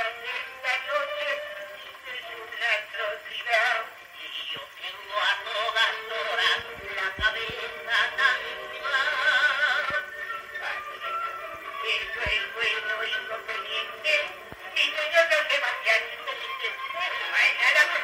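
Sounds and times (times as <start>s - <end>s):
men singing duet on gramophone: 0.0s - 18.0s
record surface noise: 0.0s - 18.0s.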